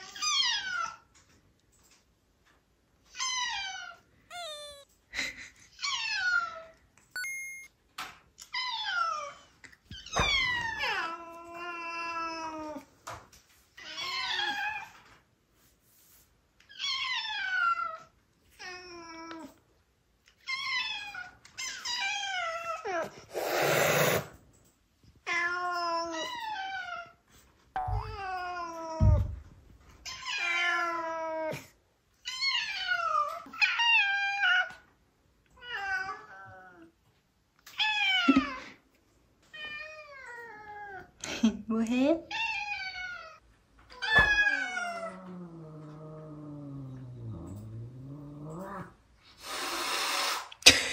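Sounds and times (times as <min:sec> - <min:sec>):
cats meowing: 0:03.1 - 0:05.0, 0:30.0 - 0:34.9, 0:42.3 - 0:49.0.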